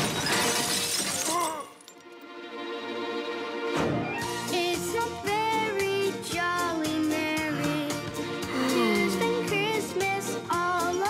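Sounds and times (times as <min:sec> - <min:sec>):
glass shattering and tinkling: 0:00.0 - 0:02.2.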